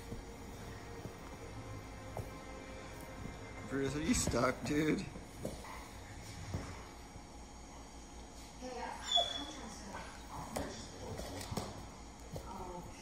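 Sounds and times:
dog whining: 9.0 - 9.7.

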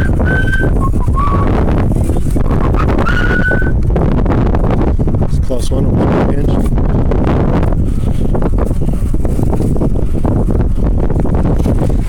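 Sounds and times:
high whistle-like tone: 0.0 - 1.6, 2.6 - 3.8
wind buffeting microphone: 0.0 - 12.0.

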